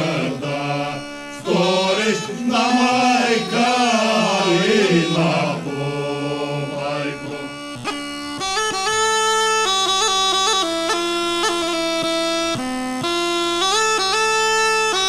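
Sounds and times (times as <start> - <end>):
group singing folk song: 0.0 - 7.8
held low drone: 0.0 - 7.9.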